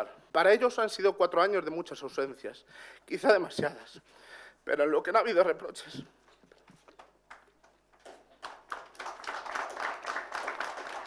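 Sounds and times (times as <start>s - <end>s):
audience applause: 8.0s - 11.0s.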